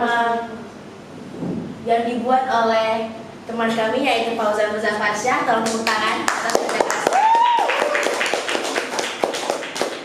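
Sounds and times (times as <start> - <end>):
people clapping: 5.6 - 10.0.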